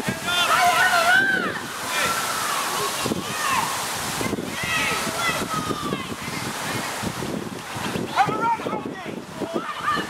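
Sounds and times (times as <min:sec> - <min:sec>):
people shouting: 0:00.0 - 0:06.2, 0:09.4 - 0:10.0
wind rumbling on microphone: 0:00.0 - 0:10.0.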